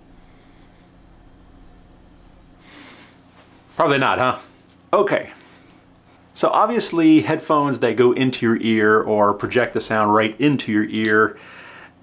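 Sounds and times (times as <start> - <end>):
room hum: 0.0 - 12.0
short breath: 2.6 - 3.2, 11.4 - 12.0.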